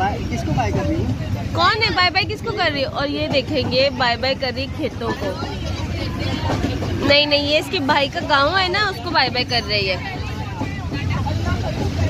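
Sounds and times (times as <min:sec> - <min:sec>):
faint voices: 0:00.0 - 0:12.0
train carriage rumble: 0:00.0 - 0:12.0.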